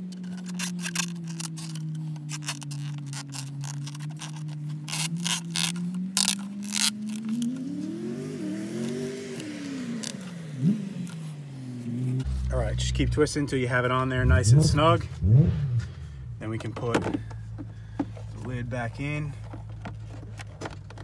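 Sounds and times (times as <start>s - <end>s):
plastic parts clicking and scraping: 0.0s - 7.6s, 16.5s - 21.0s
low humming drone: 0.0s - 20.0s.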